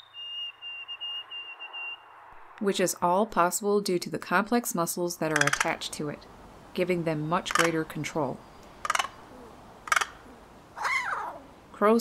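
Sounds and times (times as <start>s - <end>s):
crow calling: 7.3s - 11.5s.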